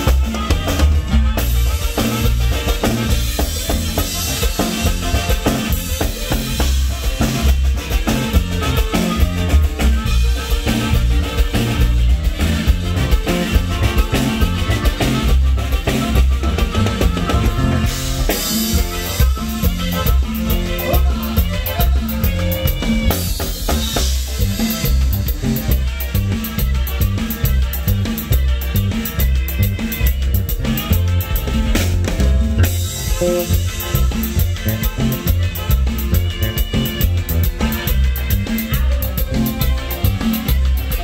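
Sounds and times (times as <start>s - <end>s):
drum kit beat: 0.0s - 41.0s
heavy repeating bass line: 0.0s - 41.0s
latin dance music: 0.0s - 41.0s.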